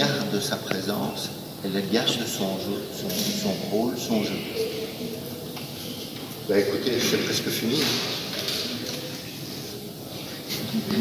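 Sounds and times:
faint room murmur: 0.0s - 11.0s.

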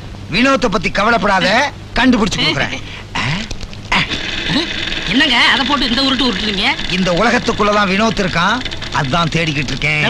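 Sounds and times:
man speaking loudly: 0.3s - 2.8s.

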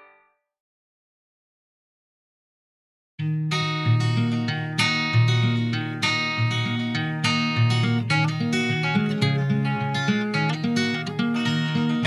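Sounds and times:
acoustic guitar: 0.0s - 0.3s, 3.2s - 12.0s.

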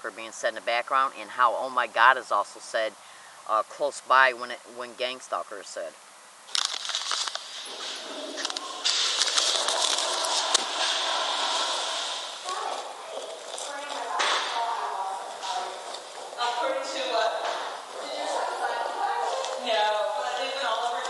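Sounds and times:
rushing hiss: 7.2s - 12.7s
indistinct voices: 7.7s - 21.0s.

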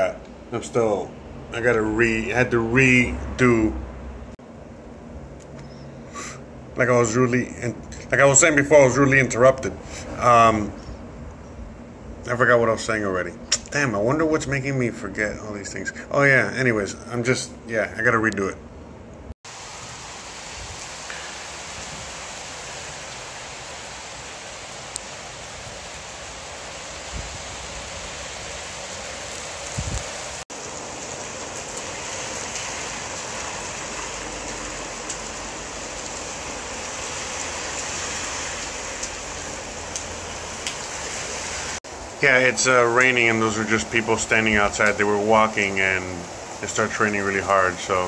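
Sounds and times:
heavy rain pouring: 19.5s - 48.0s.

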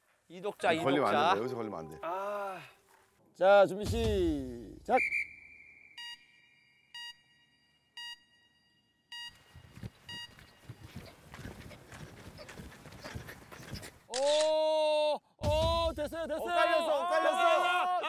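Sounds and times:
timer beeping: 5.9s - 10.6s
feet scuffing on dirt: 9.5s - 14.0s.

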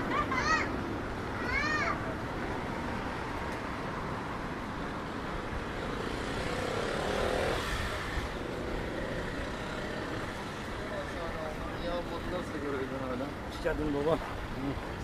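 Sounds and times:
road traffic hum: 0.0s - 15.0s
vehicle passing close: 5.6s - 11.0s.

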